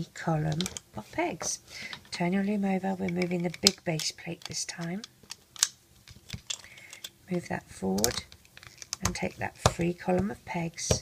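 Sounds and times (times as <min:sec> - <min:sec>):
plastic pieces clicking: 0:03.0 - 0:07.4, 0:08.0 - 0:09.2.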